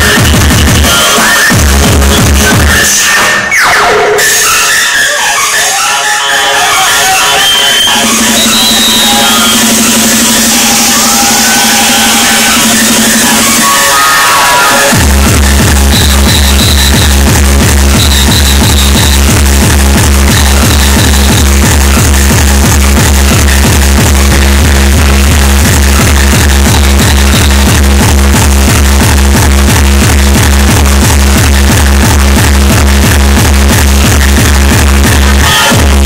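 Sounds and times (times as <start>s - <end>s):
loud electronic dance music: 0.0s - 36.0s.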